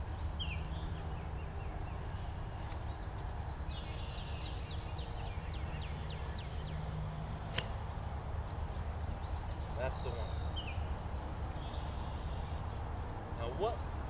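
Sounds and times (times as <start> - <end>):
bird chirping: 0.0 - 6.8, 8.3 - 14.0.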